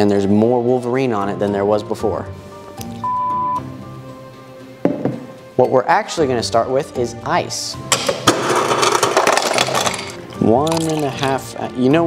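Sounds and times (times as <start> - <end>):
soft background music: 0.0 - 12.0
censor bleep: 3.0 - 3.7.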